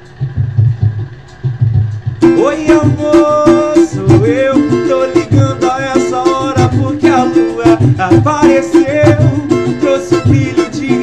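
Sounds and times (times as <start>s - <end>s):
drum and bass beat: 0.0s - 11.0s.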